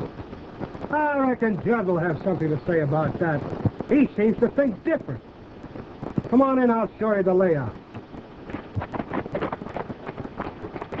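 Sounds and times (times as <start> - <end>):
film soundtrack hiss: 0.0 - 11.0
horse hooves clopping: 7.4 - 11.0.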